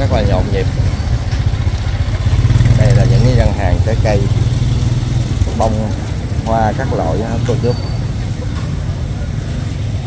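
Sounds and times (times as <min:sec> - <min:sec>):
motor scooter engine running: 0:00.0 - 0:10.0.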